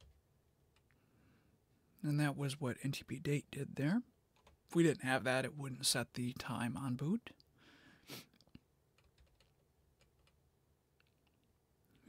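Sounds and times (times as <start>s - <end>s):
computer keyboard clicks: 9.0s - 10.4s.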